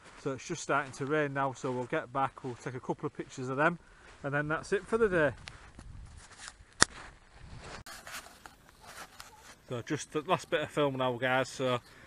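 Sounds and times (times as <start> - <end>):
faint outdoor background: 0.0 - 12.0.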